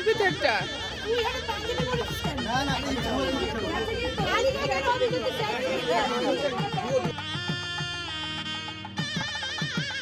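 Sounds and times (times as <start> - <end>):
people chatting: 0.0 - 7.2
background music: 0.0 - 10.0.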